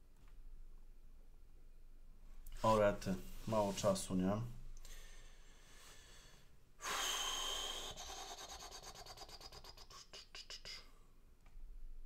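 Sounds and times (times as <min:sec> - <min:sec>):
man breathing heavily: 0:04.8 - 0:10.0.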